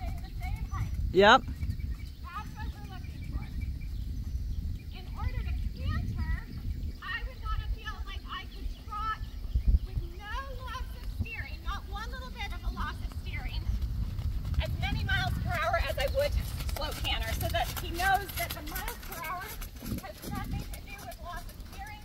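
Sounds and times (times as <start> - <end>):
horse hoofbeats on sand: 0.0 - 22.0
steady low rumble: 11.2 - 21.9.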